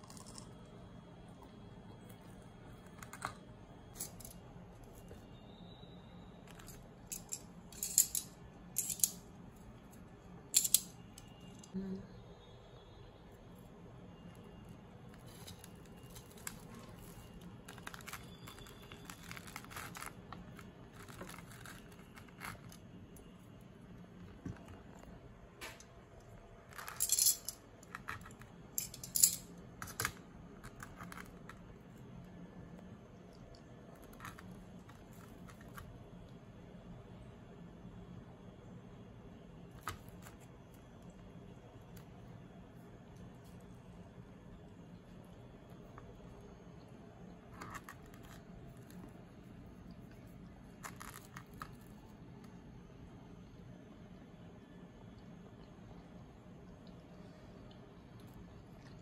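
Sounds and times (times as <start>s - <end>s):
bread roll crackling and rustling: 14.2s - 25.5s, 47.0s - 52.5s
plastic crinkling: 15.2s - 22.9s.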